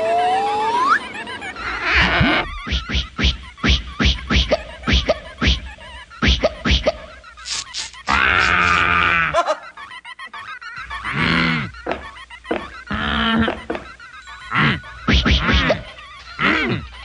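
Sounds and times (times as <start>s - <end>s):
cartoon squawks and squeaks: 0.0s - 17.0s.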